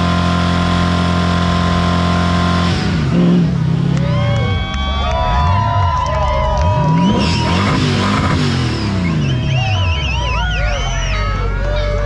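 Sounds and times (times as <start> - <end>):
car engine at high revs: 0.0 - 11.9.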